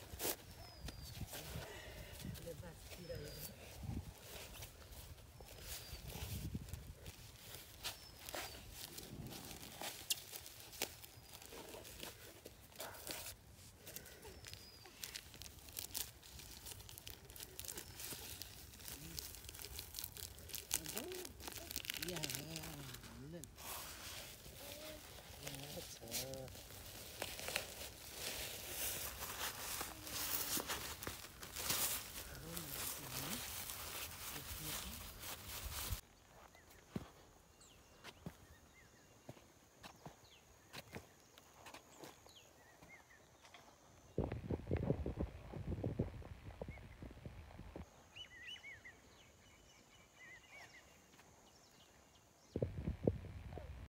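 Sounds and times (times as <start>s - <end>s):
soil clicks and scrapes: 0.0s - 36.6s
plastic film crinkling: 4.2s - 36.0s.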